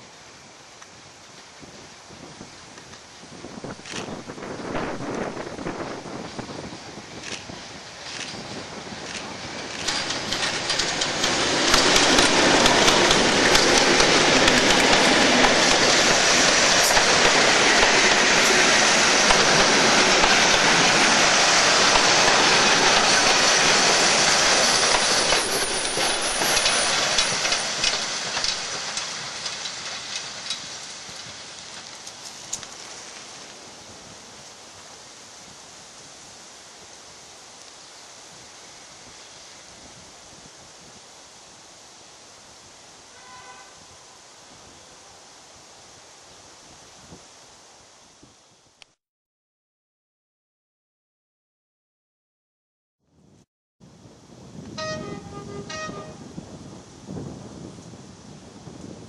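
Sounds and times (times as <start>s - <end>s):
diesel locomotive passing: 3.6s - 32.2s, 54.8s - 56.4s
wheel clicks over rail joints: 8.1s - 18.5s, 21.9s - 32.7s.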